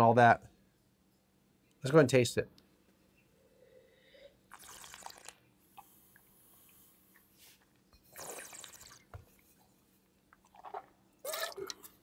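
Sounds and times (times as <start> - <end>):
soft breathing: 3.1 - 4.5
slurping sip of wine: 8.0 - 9.1.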